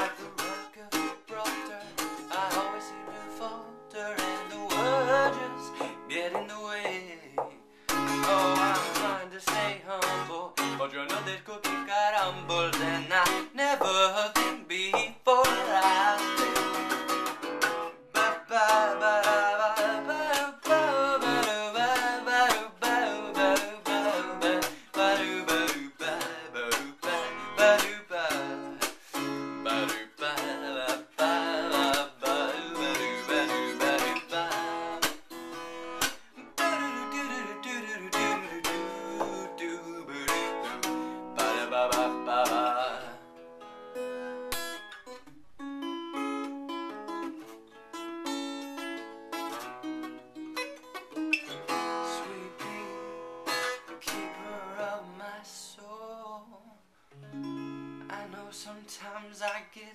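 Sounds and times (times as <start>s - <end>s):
acoustic guitar strumming: 0.0s - 55.8s, 57.1s - 59.9s.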